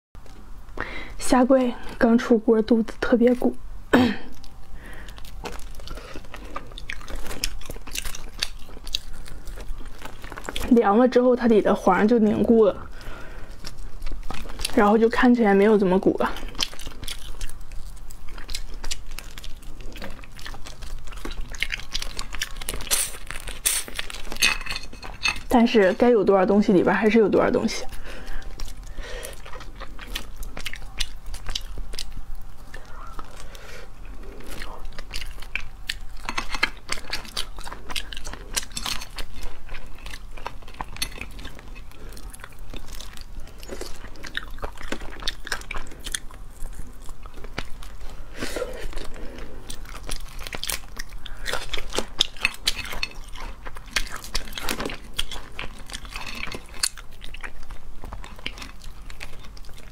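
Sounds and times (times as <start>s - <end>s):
wet chewing: 4.2s - 59.9s.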